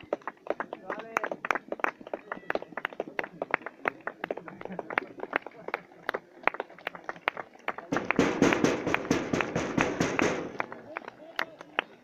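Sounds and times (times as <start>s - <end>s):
spectators clapping: 0.0s - 12.0s.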